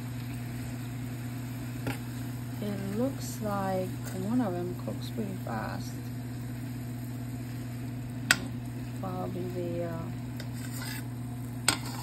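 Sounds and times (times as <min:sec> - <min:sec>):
greens sizzling in frying pan: 0:00.0 - 0:12.0.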